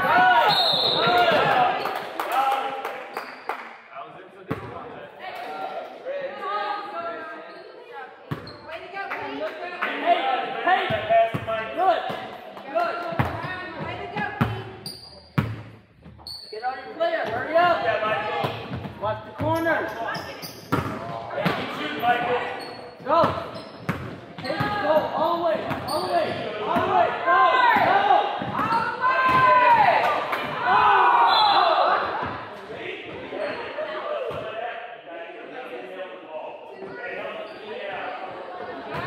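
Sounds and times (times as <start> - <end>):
sneakers squeaking: 7.3 - 8.8, 13.2 - 17.4, 18.4 - 26.9, 27.7 - 29.4, 33.1 - 34.4.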